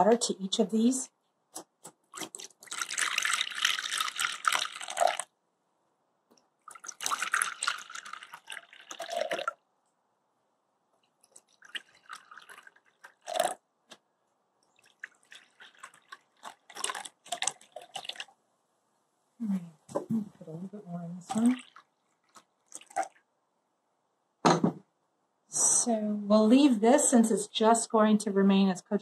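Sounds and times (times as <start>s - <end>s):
water pouring into ceramic bowls: 2.2s - 5.3s, 6.7s - 9.6s, 11.2s - 13.6s, 14.7s - 18.4s, 21.3s - 23.3s
knock: 24.4s - 24.8s.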